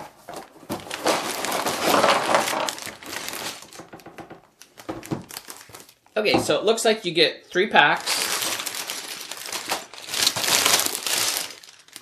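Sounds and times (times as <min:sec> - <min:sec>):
plastic bags crinkling: 0:00.0 - 0:06.6, 0:07.8 - 0:12.0.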